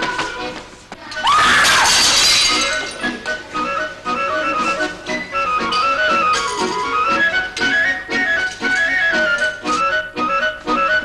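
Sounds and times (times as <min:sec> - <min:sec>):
china plates crashing and shattering: 0:01.5 - 0:03.2.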